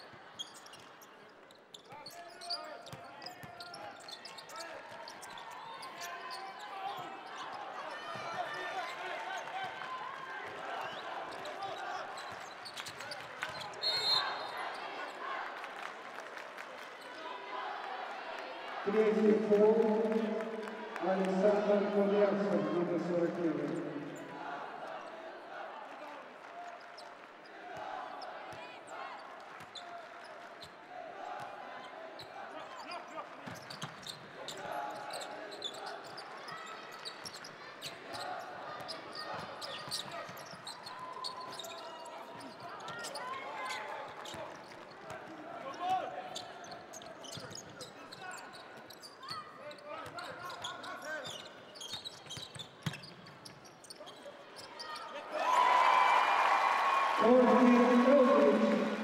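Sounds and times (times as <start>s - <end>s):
shoe squeaks: 1.5s - 6.6s, 33.6s - 44.5s, 46.3s - 55.3s.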